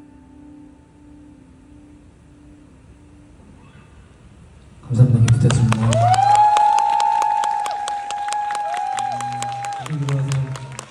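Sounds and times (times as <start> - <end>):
long high held note: 0.0 - 4.6
audience applauding and cheering: 5.0 - 10.9.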